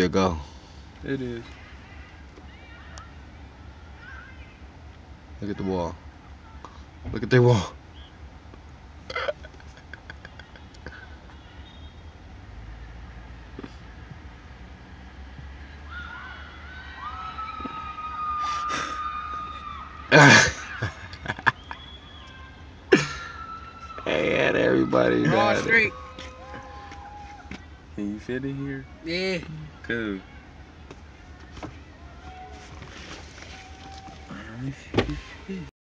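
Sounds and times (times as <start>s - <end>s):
faint distant calls: 0.5s - 5.2s, 10.4s - 35.6s
girls screaming: 15.8s - 21.1s, 22.1s - 27.6s
car cabin rumble: 32.6s - 35.4s.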